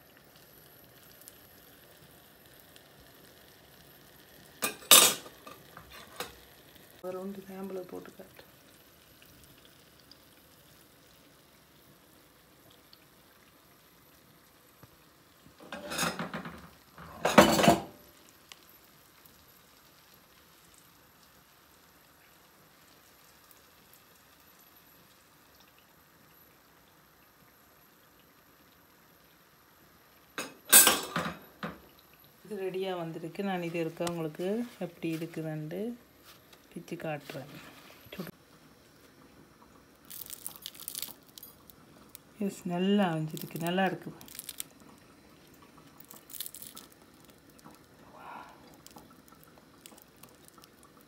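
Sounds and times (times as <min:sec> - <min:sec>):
oil deep-frying hiss: 0:00.0 - 0:51.0.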